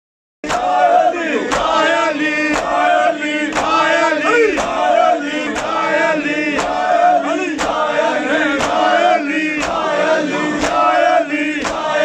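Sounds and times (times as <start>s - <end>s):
men chanting in unison: 0.4s - 12.0s
hands slapping chests: 1.5s - 1.8s, 2.4s - 2.9s, 3.5s - 3.9s, 4.5s - 4.8s, 6.5s - 6.8s, 7.6s - 7.9s, 8.6s - 8.9s, 9.6s - 10.0s, 10.6s - 11.0s, 11.6s - 12.0s.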